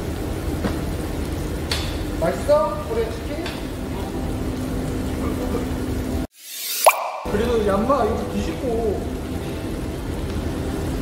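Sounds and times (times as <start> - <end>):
restaurant background noise: 0.0 - 6.3
rising plop sound effect: 6.4 - 7.5.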